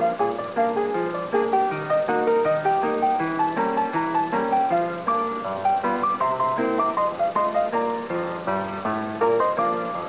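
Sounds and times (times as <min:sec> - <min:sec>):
upbeat ragtime music: 0:00.0 - 0:10.0.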